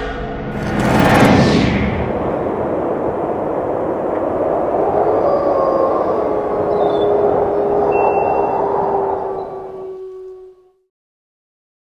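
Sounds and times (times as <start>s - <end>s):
dense rumble drone: 0.0s - 10.4s
steady held tone: 6.2s - 9.5s.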